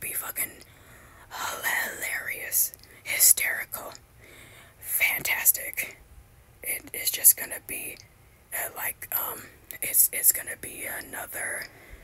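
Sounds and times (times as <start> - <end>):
person whispering: 0.0 - 0.7, 1.3 - 4.0, 4.8 - 6.0, 8.6 - 11.7.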